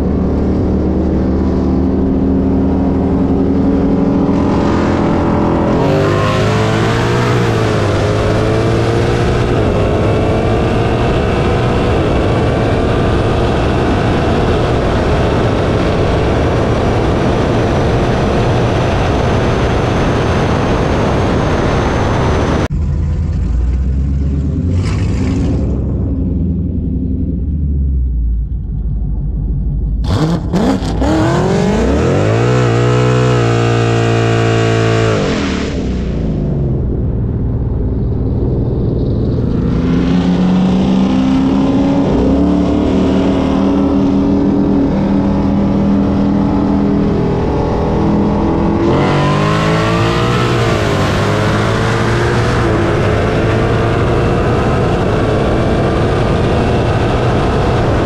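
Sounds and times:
car engine at full throttle: 0.0s - 58.0s.

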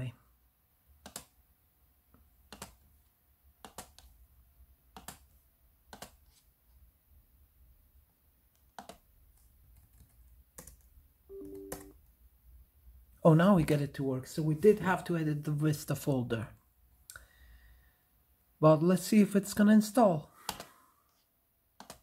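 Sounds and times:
computer keys and mouse clicks: 1.0s - 1.4s, 2.5s - 2.8s, 3.6s - 4.2s, 4.9s - 5.3s, 5.9s - 6.2s, 8.5s - 11.9s, 21.8s - 22.0s
low two-note tone: 11.3s - 11.9s.

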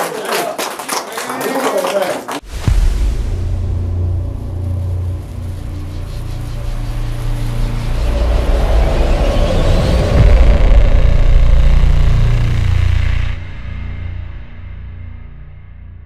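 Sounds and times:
rising whoosh: 2.4s - 15.2s
deep steady rumble: 2.5s - 16.0s.

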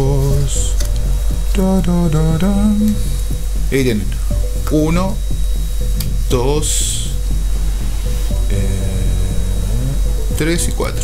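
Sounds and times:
man humming a tune: 0.0s - 3.4s, 8.4s - 10.4s.

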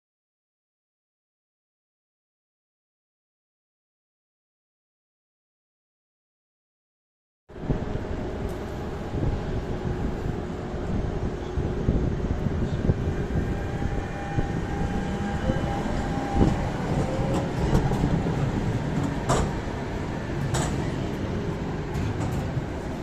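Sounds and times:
tram wheels rumbling on rails: 7.5s - 23.0s
faint whining tone: 11.0s - 18.6s.

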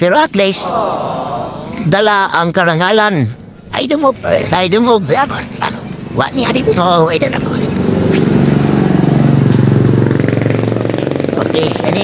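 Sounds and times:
person speaking: 0.5s - 2.1s.

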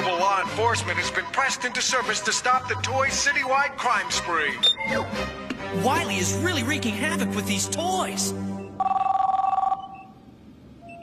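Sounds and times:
telephone two-tone ring: 8.6s - 10.2s.

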